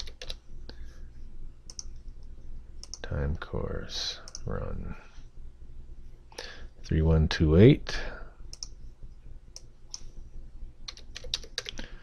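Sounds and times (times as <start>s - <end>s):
computer keyboard keystrokes: 0.0s - 0.4s, 2.8s - 3.0s, 10.9s - 11.8s
clicks: 1.7s - 3.1s.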